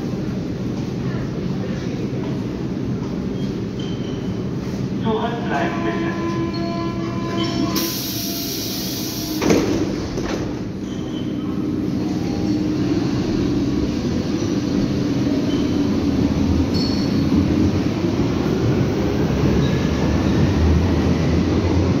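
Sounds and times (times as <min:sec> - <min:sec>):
train hum pulling away: 0:00.0 - 0:22.0
train hiss: 0:07.6 - 0:09.6
sliding doors shutting thud: 0:09.3 - 0:10.7.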